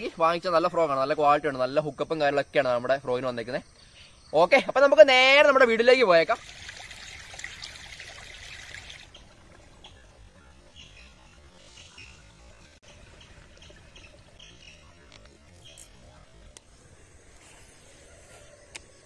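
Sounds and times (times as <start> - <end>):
faint chirps: 3.4 - 4.7, 9.0 - 19.0
stream water trickling: 5.2 - 17.0.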